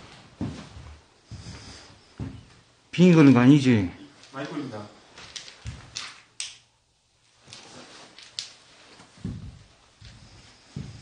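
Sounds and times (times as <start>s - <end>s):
footsteps on hard floor: 0.0s - 2.7s, 8.8s - 11.0s.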